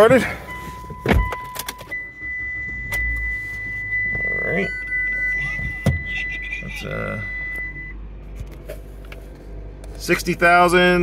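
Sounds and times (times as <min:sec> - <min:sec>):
car engine cranking and idling: 0:00.0 - 0:11.0.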